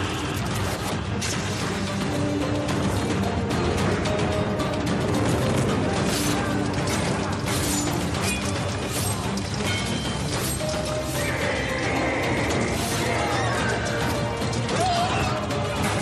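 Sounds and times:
dramatic trailer music: 0:00.0 - 0:16.0.

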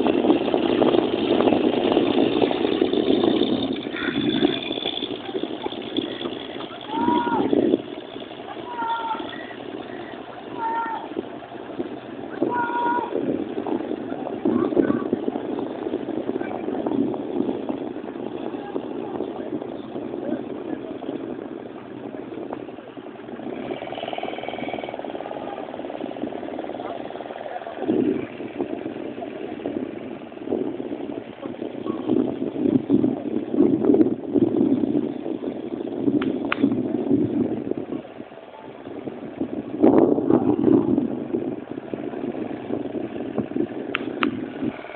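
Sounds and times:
distant outboard motors humming: 0:00.0 - 0:33.6, 0:34.2 - 0:44.9
indistinct background voices: 0:03.8 - 0:33.5.

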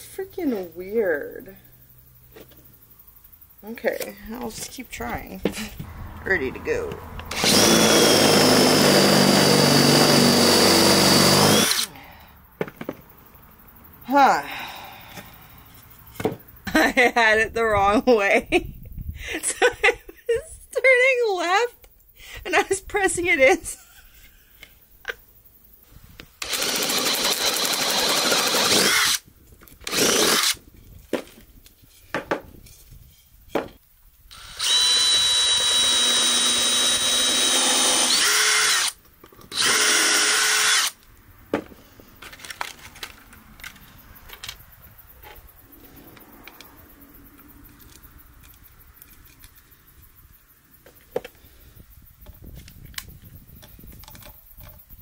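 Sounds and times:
cordless drill boring into wood: 0:07.3 - 0:11.9, 0:26.4 - 0:29.2, 0:29.8 - 0:30.6, 0:34.3 - 0:41.0
tools and wood knocking: 0:16.2 - 0:16.4, 0:32.0 - 0:32.6, 0:33.5 - 0:33.8.

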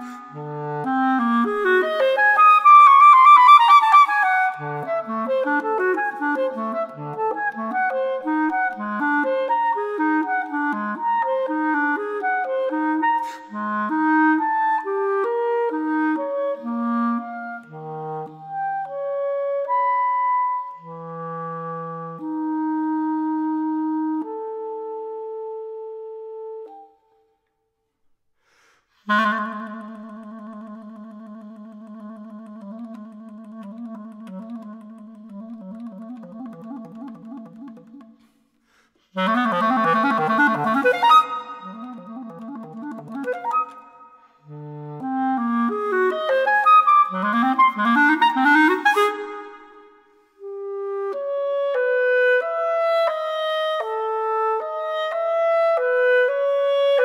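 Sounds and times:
clarinet playing: 0:00.0 - 0:27.2, 0:29.0 - 0:57.0.

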